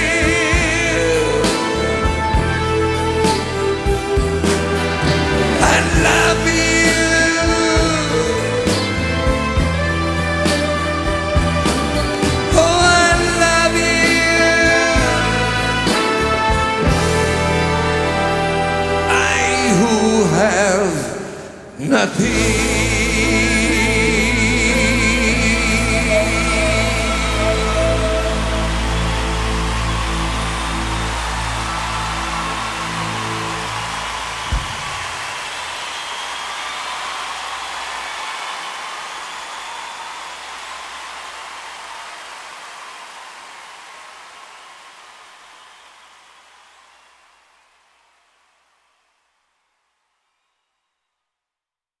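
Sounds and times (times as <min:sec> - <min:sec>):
crowd cheering and applause: 0:00.0 - 0:49.0.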